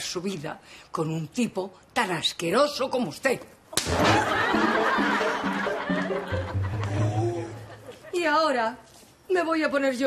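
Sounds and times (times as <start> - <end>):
music playing: 3.8 - 8.0
audience laughter: 3.9 - 8.2.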